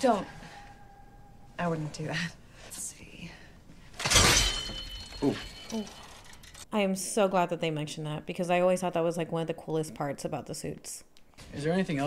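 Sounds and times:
faint metallic ringing: 0.0 - 2.7, 4.1 - 6.5.

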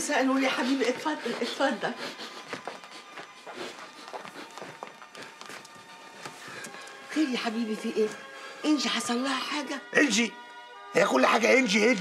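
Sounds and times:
footsteps on floor: 0.6 - 7.0.

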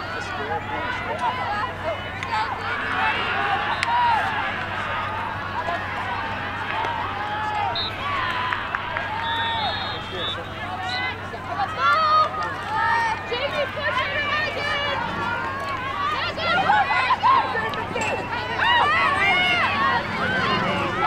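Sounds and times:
people shouting and calling: 0.0 - 21.0.

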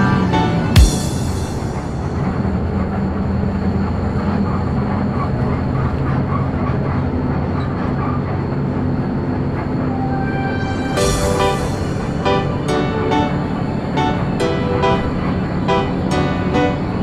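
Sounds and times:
bus engine drone: 0.0 - 17.0
road rumble: 0.0 - 17.0.

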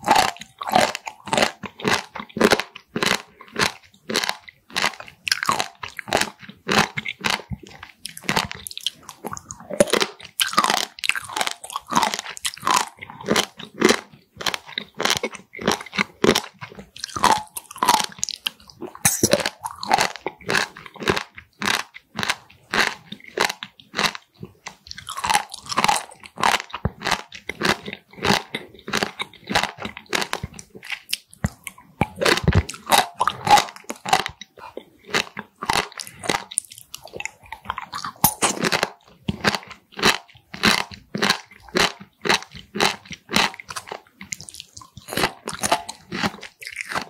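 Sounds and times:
crunchy wet chewing: 0.0 - 47.0.

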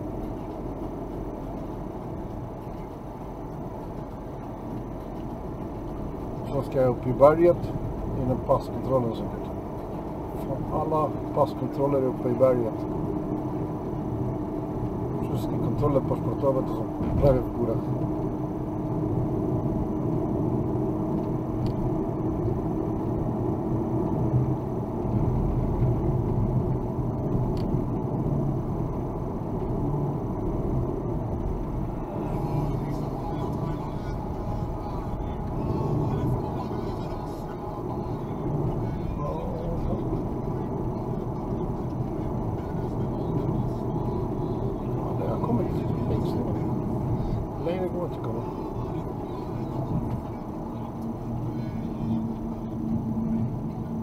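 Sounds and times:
car engine and tyre noise: 0.0 - 54.0.

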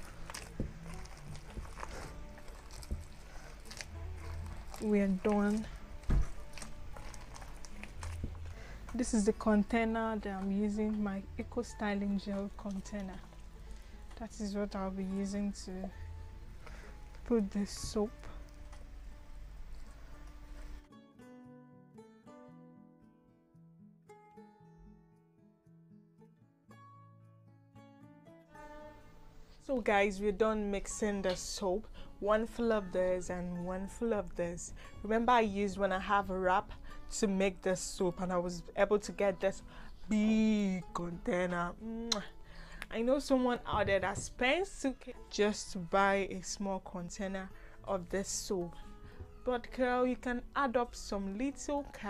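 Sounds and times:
hands squelching wet soap paste: 0.0 - 8.6
plucked acoustic guitar music: 0.0 - 15.1
faint background music: 0.0 - 23.6, 27.2 - 52.0.

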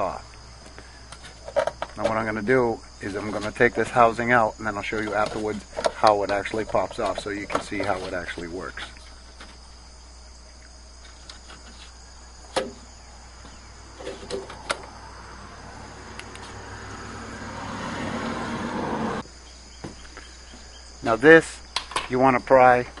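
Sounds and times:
rushing noise: 16.4 - 19.2.

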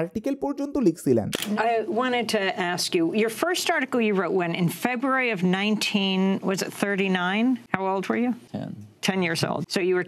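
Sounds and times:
man talking: 0.0 - 1.4, 8.5 - 8.9.

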